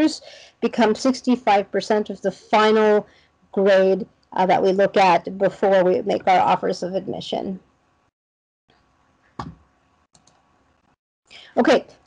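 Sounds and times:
computer mouse clicking: 0:10.2 - 0:10.4.

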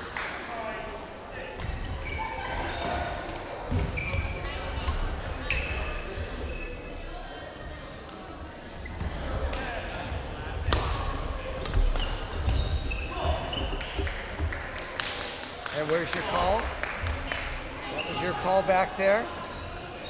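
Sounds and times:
sneaker squeaks on hardwood: 0:02.0 - 0:02.9, 0:03.7 - 0:04.6, 0:11.7 - 0:14.5.

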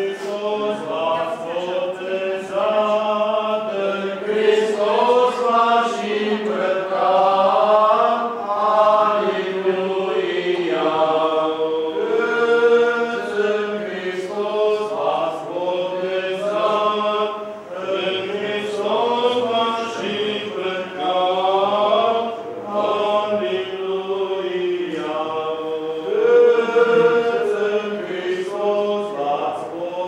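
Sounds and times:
voices chanting unaccompanied: 0:00.0 - 0:30.0.

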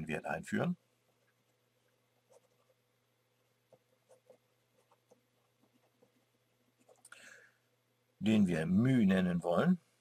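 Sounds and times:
marker scratching on paper: 0:02.2 - 0:02.8, 0:03.7 - 0:07.0.

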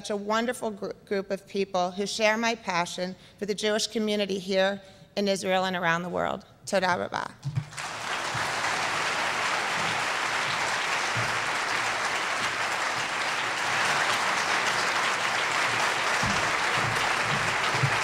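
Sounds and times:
audience applauding: 0:07.7 - 0:18.0.

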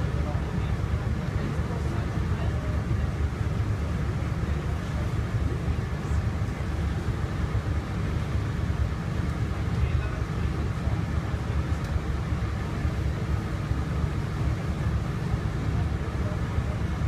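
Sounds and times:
boat engine rumbling: 0:00.0 - 0:17.0.

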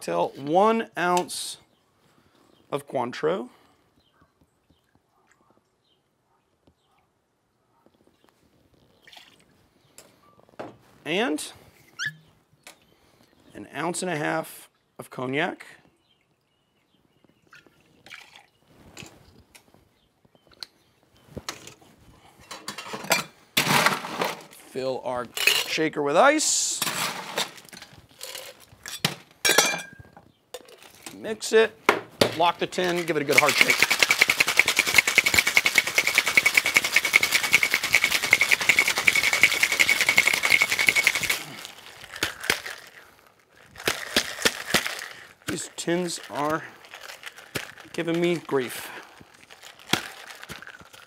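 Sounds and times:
ice rattling in metal shaker: 0:27.2 - 0:28.6, 0:32.7 - 0:43.0, 0:43.6 - 0:51.0
glass and metal clinks: 0:28.8 - 0:30.1.

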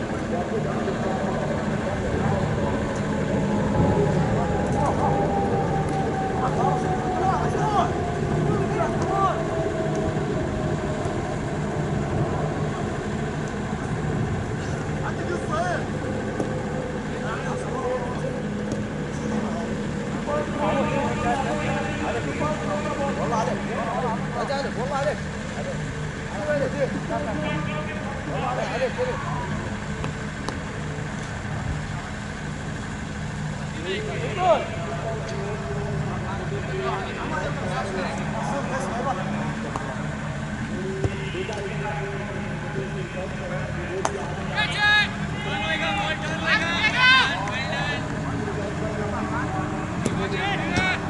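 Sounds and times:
low hum: 0:00.0 - 0:45.4
distant shouts of players: 0:00.1 - 0:13.7, 0:14.6 - 0:31.1, 0:32.2 - 0:51.0.

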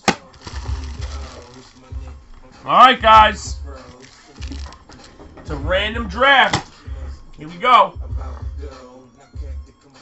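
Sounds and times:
handling rustle: 0:00.0 - 0:02.5, 0:03.7 - 0:05.3
hip-hop beat: 0:00.0 - 0:10.0.

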